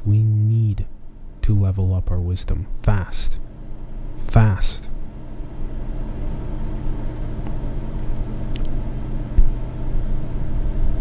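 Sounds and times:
faint hum: 0.0 - 11.0
steady low rumble: 0.0 - 11.0.

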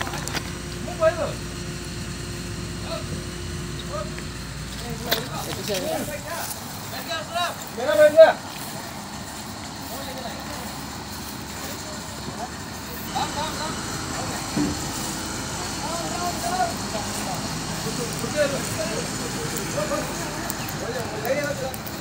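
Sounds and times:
diesel engine running: 0.0 - 22.0.

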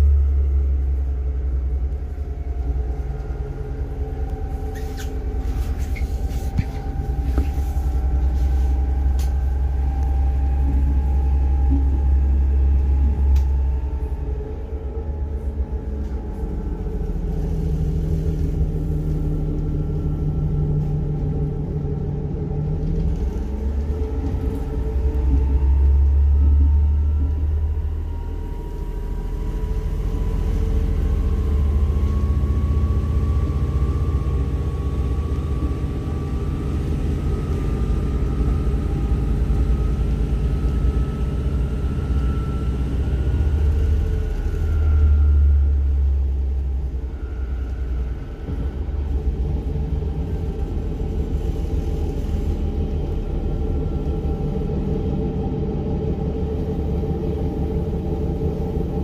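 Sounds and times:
diesel railcar rumble: 0.0 - 59.0
faint whine rising in pitch: 0.0 - 59.0.

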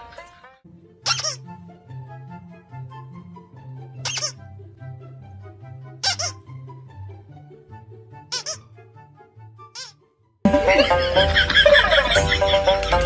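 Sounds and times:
light background music: 0.0 - 13.0
squeaky dog toy squeaks: 1.0 - 1.4, 4.0 - 4.4, 6.0 - 6.4, 8.3 - 8.7, 9.7 - 10.0.

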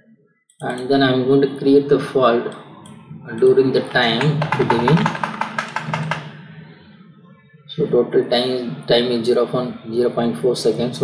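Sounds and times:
keyboard key tapping: 3.9 - 6.3.

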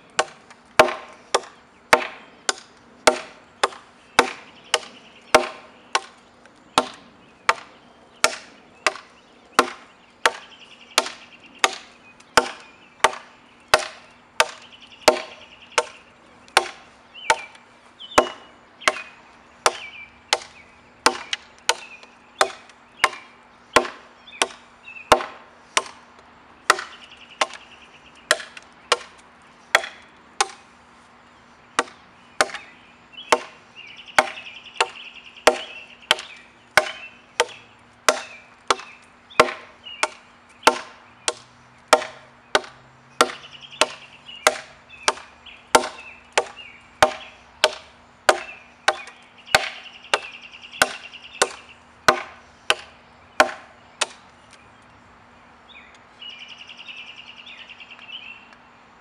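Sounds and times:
knife blades chopping wood: 0.2 - 26.0, 26.6 - 27.6, 28.3 - 30.7, 31.8 - 32.7, 33.3 - 33.6, 34.2 - 54.2.

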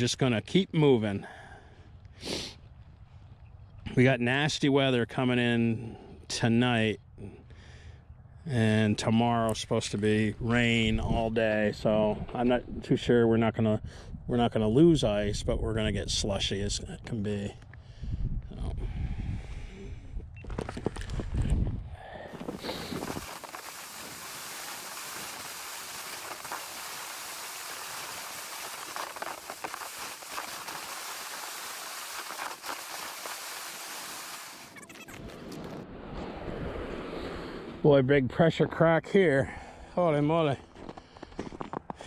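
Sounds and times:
sled hiss sliding over snow: 2.2 - 2.6, 22.3 - 34.8.

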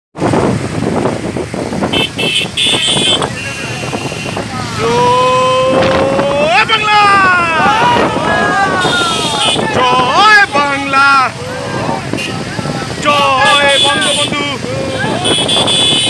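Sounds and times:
motorcycles running: 0.2 - 16.0
overlapping voices: 4.5 - 15.4
men shouting drawn-out call: 4.5 - 15.5.

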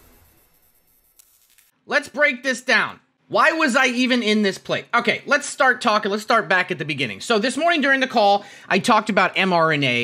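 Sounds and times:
man speaking: 1.9 - 10.0.

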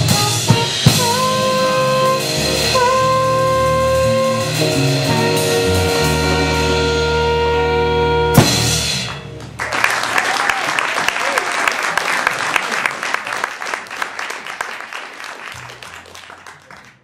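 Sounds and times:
audience clapping: 9.1 - 17.0
audience cheering: 9.6 - 17.0.

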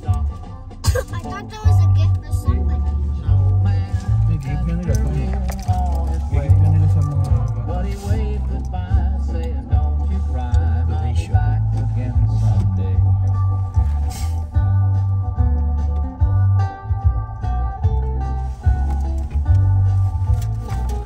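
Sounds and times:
guitar music on car radio: 0.0 - 21.0.

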